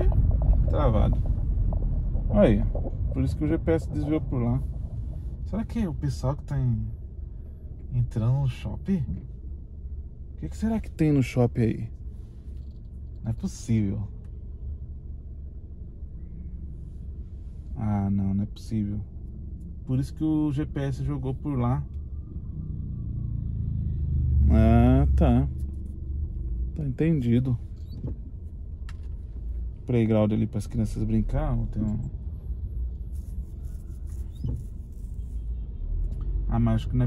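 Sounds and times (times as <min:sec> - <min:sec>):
car engine idling: 0:00.0 - 0:37.0.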